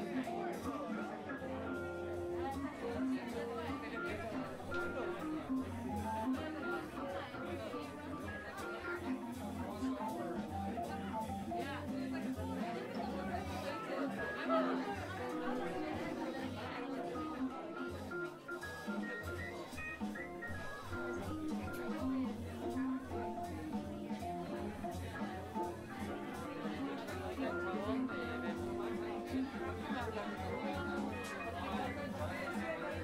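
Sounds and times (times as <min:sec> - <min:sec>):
background music: 0:00.0 - 0:33.0
crowd chatter: 0:00.0 - 0:33.0.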